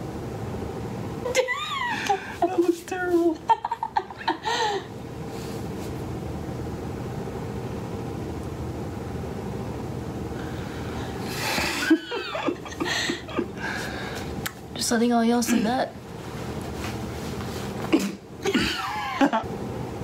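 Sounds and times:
steady hum: 0.0s - 20.0s
man and woman laughing: 3.4s - 4.9s, 11.3s - 13.8s, 18.5s - 19.5s.

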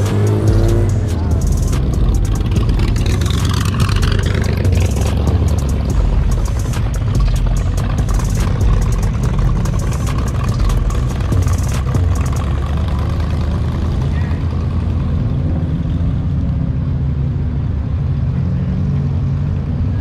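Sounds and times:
sharp irregular ticks: 0.0s - 12.5s
car engines rumbling: 0.0s - 20.0s.

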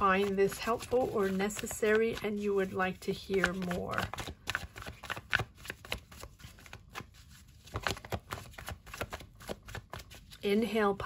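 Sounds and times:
cards being shuffled: 0.0s - 10.4s.

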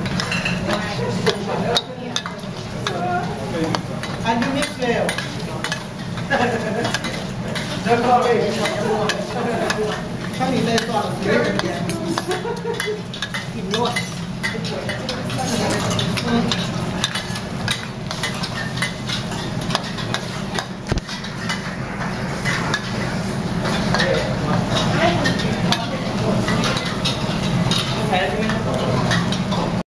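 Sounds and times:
low background hum: 0.0s - 29.8s.

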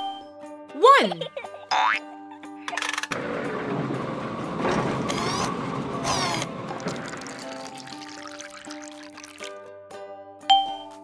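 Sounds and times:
mechanical whirring and rattling: 2.9s - 7.1s.

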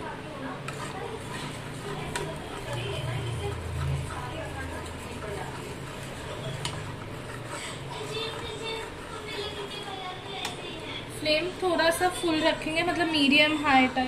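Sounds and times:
spatula scraping metal pan: 0.4s - 13.8s.

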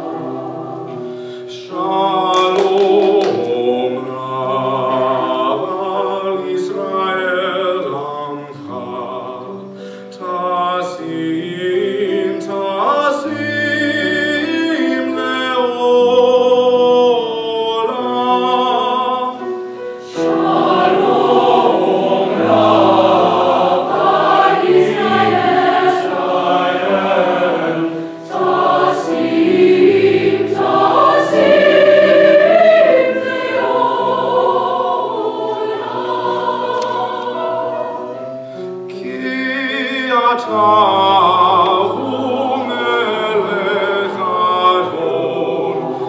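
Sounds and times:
mixed choir singing: 0.0s - 9.8s, 10.4s - 46.0s.

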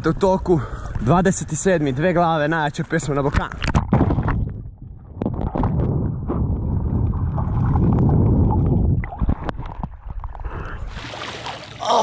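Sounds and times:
underwater rumbling and gurgling: 3.3s - 11.0s
knocks underwater: 3.4s - 10.4s.

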